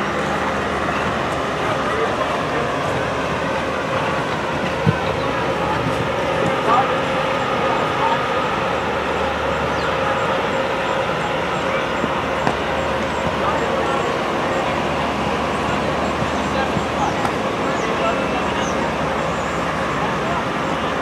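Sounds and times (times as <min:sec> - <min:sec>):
distant voices: 0:00.0 - 0:21.0.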